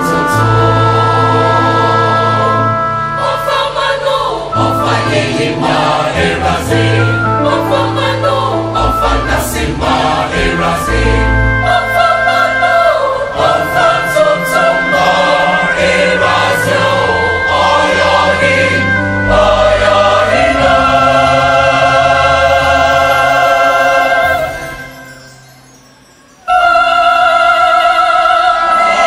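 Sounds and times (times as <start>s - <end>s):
choir singing gospel: 0.0s - 25.4s, 26.4s - 29.0s
electric keyboard: 0.0s - 27.3s.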